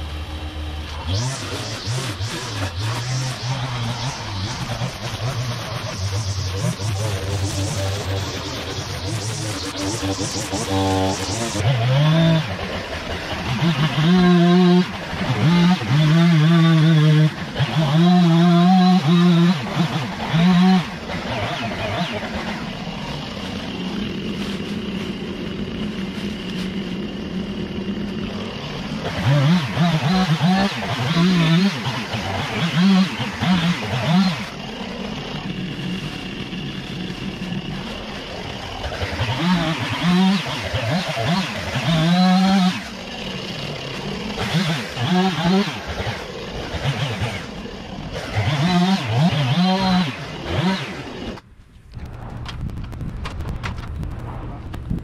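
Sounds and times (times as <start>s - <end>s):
string trimmer engine revving: 0.0s - 51.4s.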